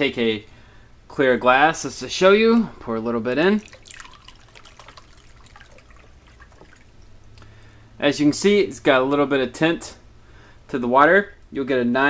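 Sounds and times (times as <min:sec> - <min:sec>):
water pouring into glass: 0:03.5 - 0:07.1.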